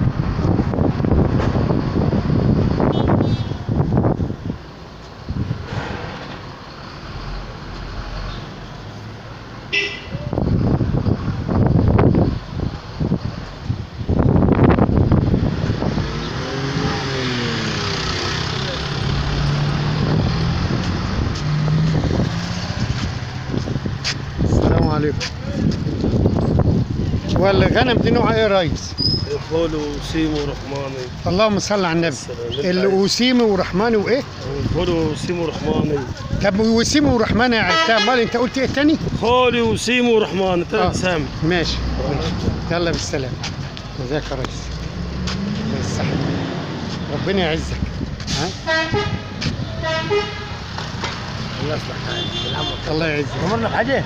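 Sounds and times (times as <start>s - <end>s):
outdoor noise: 0.0s - 54.0s
street noise: 0.0s - 54.0s
vehicle horn tooting: 2.8s - 3.6s, 9.7s - 10.3s, 37.6s - 38.7s, 48.6s - 50.6s, 52.1s - 53.0s.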